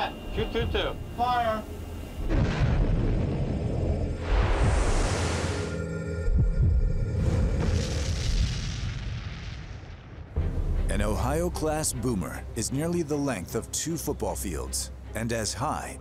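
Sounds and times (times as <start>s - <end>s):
low rumble: 2.2s - 11.8s
background music with held notes: 10.4s - 16.0s.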